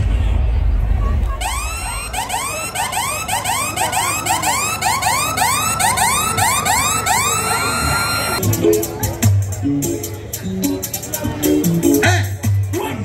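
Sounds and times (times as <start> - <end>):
electronic siren whooping: 1.4 - 8.4.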